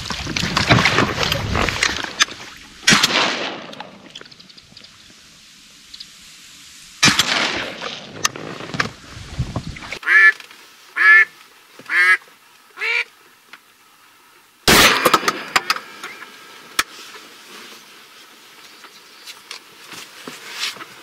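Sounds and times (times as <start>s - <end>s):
shotgun shot: 2.9s - 3.9s, 7.0s - 8.2s, 14.7s - 15.7s
duck quacks: 10.0s - 10.4s, 11.0s - 11.3s, 11.9s - 12.2s, 12.8s - 13.1s.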